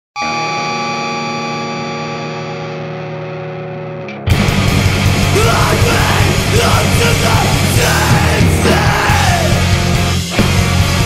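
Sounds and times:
electric guitar chord ringing: 0.2 - 9.9.

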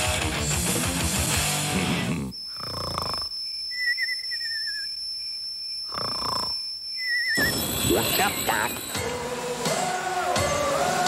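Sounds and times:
rock music with electric guitar: 0.0 - 2.1
thin steady high tone: 2.3 - 9.5
warbling whistle-like tone: 3.4 - 8.9.

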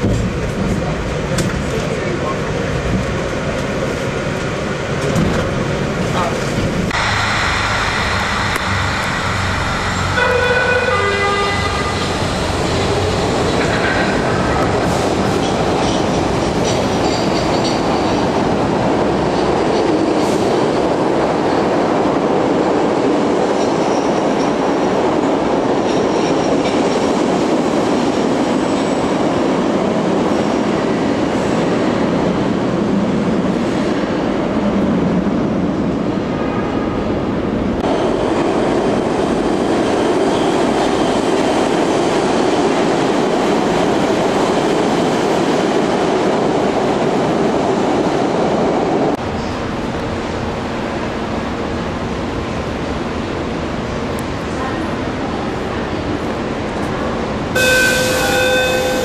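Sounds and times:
train rumbling on rails: 0.0 - 59.0
high squealing tones: 57.6 - 59.0.

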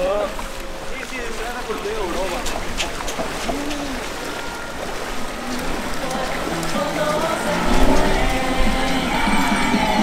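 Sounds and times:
feet wading through water: 0.0 - 10.0
indistinct voices: 5.4 - 10.0.

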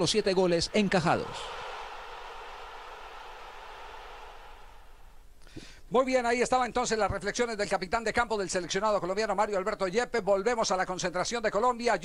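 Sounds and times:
distant stadium crowd noise: 0.0 - 5.3.

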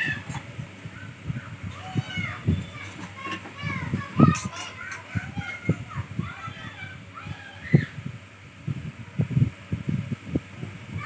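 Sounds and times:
high-pitched child's vocal sound: 1.3 - 8.0.

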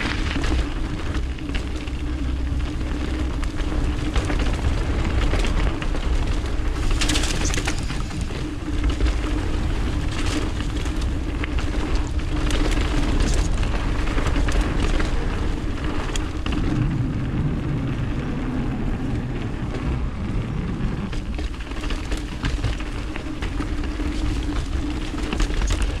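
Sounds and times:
bike rattles and clicks: 0.0 - 26.0
tyres rumbling on dirt: 0.0 - 26.0.

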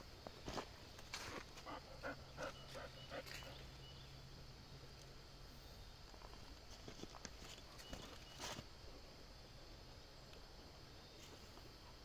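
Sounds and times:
faint steady background noise: 0.0 - 12.0.

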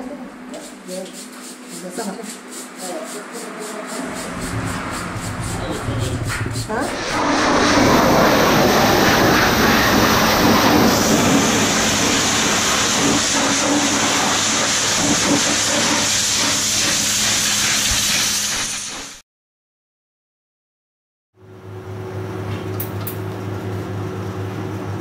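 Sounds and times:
steady low hum: 2.8 - 13.0
pressure washer spray hiss: 3.9 - 19.2.

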